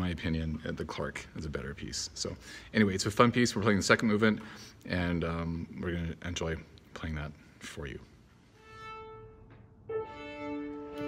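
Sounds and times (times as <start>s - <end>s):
viola bowed note: 8.6s - 11.0s.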